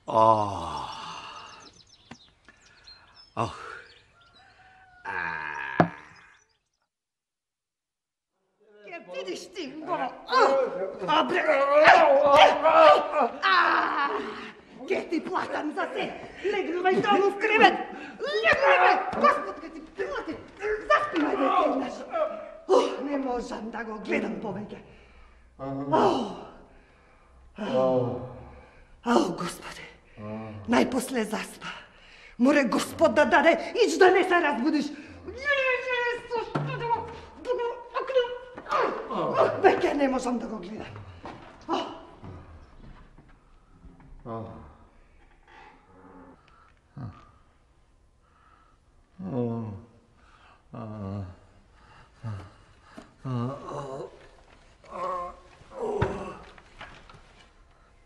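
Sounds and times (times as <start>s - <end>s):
man moaning: 0.0s - 1.5s
people yelping and whimpering: 10.3s - 14.5s.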